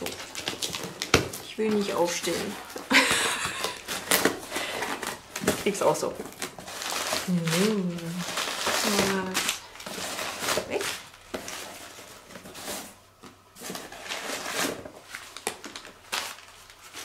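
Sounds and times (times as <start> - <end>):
packaging rustling and crinkling: 0.0 - 17.0.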